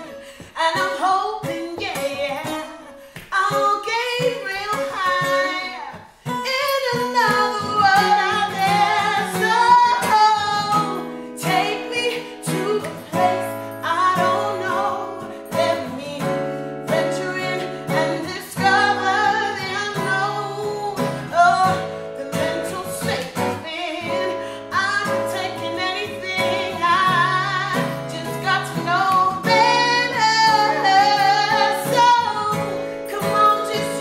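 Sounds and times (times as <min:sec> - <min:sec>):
plucked acoustic guitar: 0:00.0 - 0:34.0
woman singing: 0:00.0 - 0:34.0.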